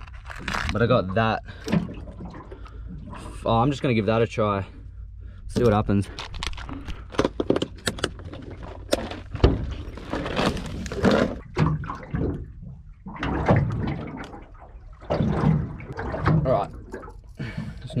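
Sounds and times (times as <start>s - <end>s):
low steady rumble: 0.0s - 18.0s.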